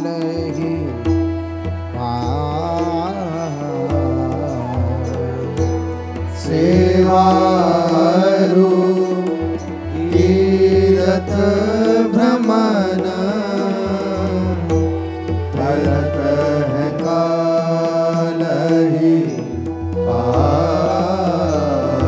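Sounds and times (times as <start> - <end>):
person chanting: 0.0 - 22.0.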